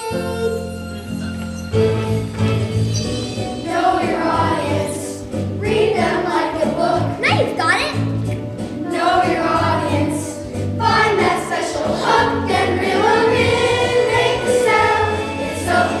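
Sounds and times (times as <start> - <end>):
instrumental accompaniment with bass: 0.0 - 16.0
children's chorus singing: 2.3 - 7.3, 8.7 - 16.0.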